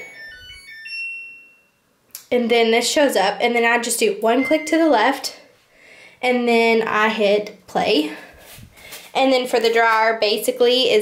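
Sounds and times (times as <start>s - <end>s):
washing machine electronic chime: 0.0s - 1.9s, 4.3s - 5.1s.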